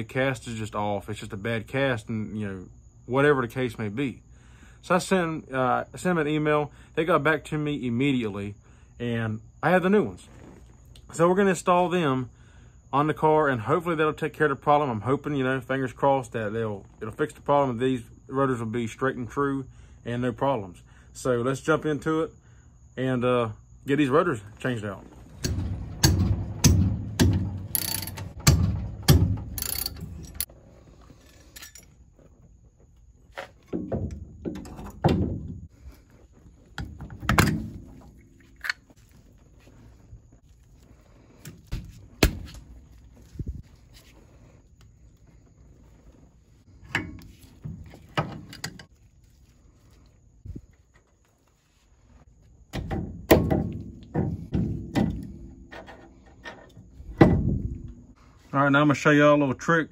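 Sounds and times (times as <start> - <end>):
low bumps: 24.4 - 31.0, 56.8 - 58.3
metallic clinks and knocks: 25.4 - 30.5, 31.2 - 32.0.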